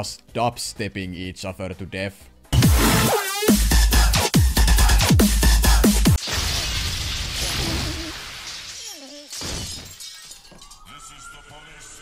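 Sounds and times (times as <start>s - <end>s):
glass shattering: 6.2s - 11.4s
man falling cry: 7.4s - 9.4s
siren wailing: 10.4s - 12.0s.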